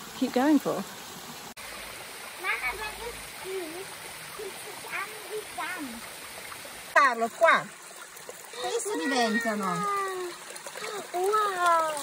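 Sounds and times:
stream rushing over rocks: 0.0s - 12.0s.

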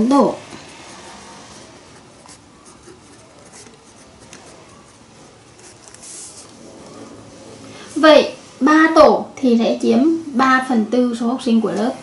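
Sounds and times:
pen scratching on paper: 0.6s - 6.6s.

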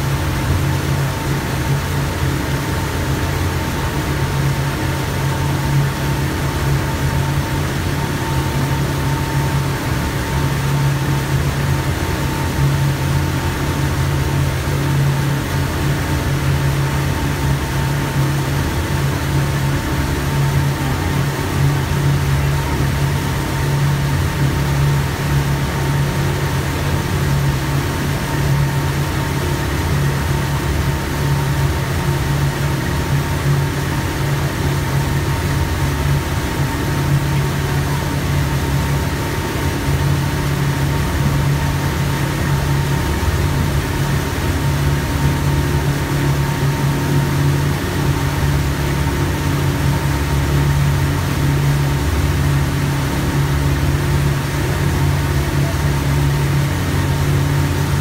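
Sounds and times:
churning wake rushing: 0.0s - 58.0s
outboard motor droning: 0.0s - 58.0s.

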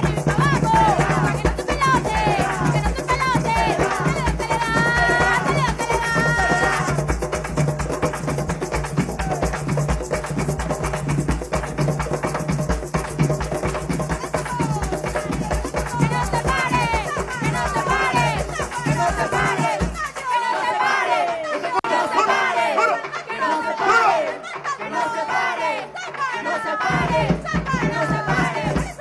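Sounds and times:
people singing: 0.0s - 10.0s, 13.7s - 29.0s
fast drumming with sticks: 0.0s - 21.4s, 24.8s - 29.0s.

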